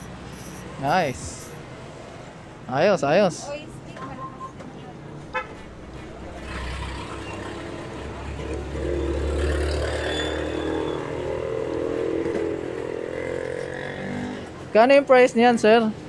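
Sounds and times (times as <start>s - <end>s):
vehicle driving past: 6.2s - 14.4s.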